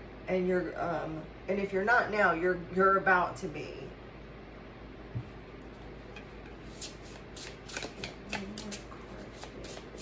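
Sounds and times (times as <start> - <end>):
cards being shuffled: 6.7 - 10.0.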